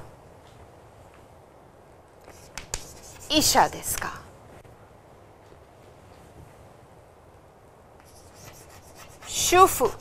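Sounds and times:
chalk writing on blackboard: 2.2s - 3.7s, 8.0s - 10.0s.

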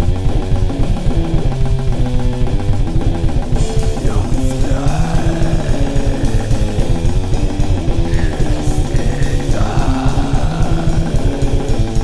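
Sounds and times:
distorted electric guitar: 0.0s - 12.0s
fast dense drumming: 0.0s - 12.0s.

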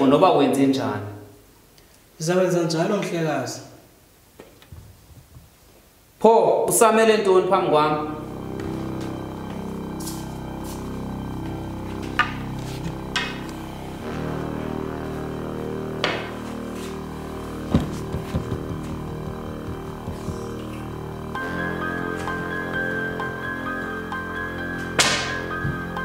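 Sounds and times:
ambient music with held tones: 6.8s - 26.0s
sharp knocks: 16.0s - 16.4s, 17.7s - 20.6s, 25.0s - 25.9s.

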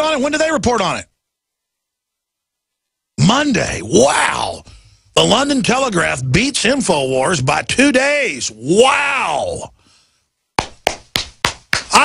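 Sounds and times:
slow hand claps: 10.6s - 12.0s.

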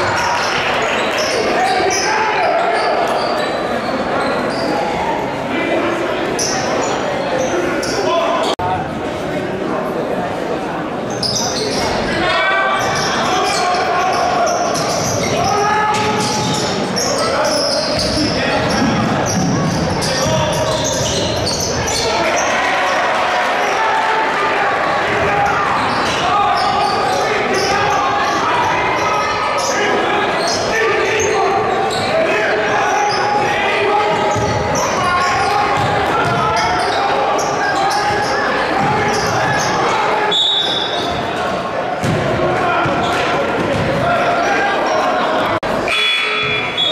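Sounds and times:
chatter and shouts of people: 0.0s - 46.9s
basketball bouncing on hardwood: 35.8s - 36.4s, 42.0s - 43.0s, 43.6s - 44.0s.

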